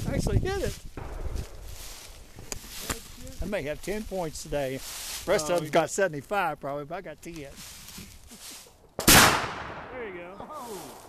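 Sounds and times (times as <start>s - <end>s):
rifle shot echoing: 1.0s - 1.7s, 9.0s - 11.0s.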